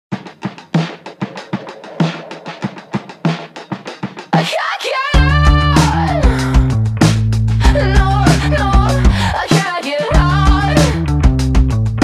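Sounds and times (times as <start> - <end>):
drum kit beat: 0.1 - 12.0.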